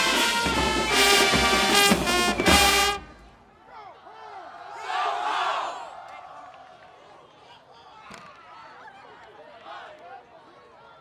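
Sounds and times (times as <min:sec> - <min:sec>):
crowd yelling and cheering: 0:00.0 - 0:11.0.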